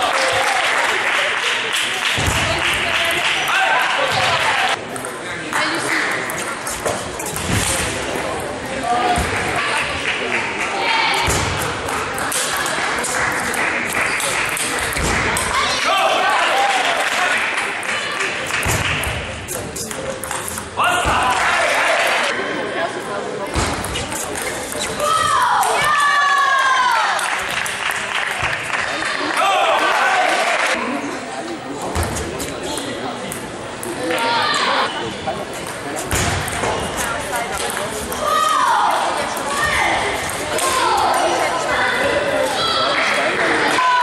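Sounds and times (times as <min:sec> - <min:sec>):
scattered applause: 0:00.0 - 0:04.8, 0:05.4 - 0:06.7, 0:09.3 - 0:11.2, 0:11.9 - 0:19.2, 0:21.2 - 0:22.4, 0:25.1 - 0:30.8, 0:42.3 - 0:44.0
murmur of voices: 0:00.0 - 0:44.0
table tennis balls bouncing: 0:11.2 - 0:15.6, 0:18.6 - 0:21.3, 0:35.6 - 0:38.6.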